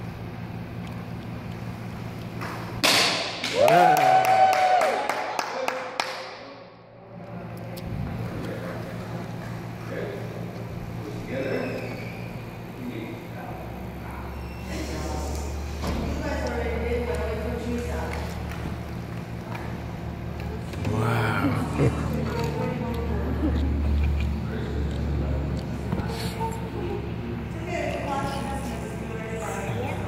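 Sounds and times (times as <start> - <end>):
low steady hum: 6.8 - 30.0.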